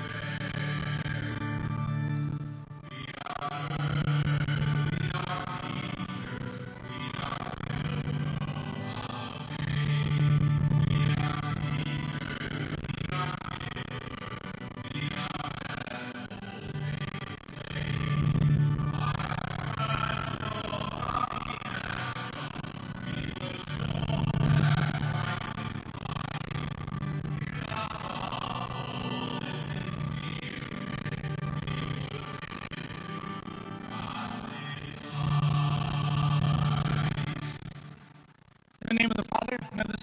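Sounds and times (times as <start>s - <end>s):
hymn singing: 2.9s - 26.4s, 27.3s - 32.8s, 33.6s - 37.4s.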